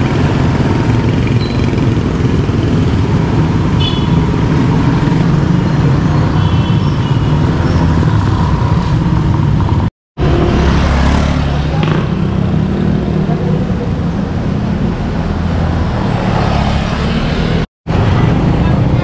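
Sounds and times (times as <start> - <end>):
motorcycle engines: 0.0 - 19.0.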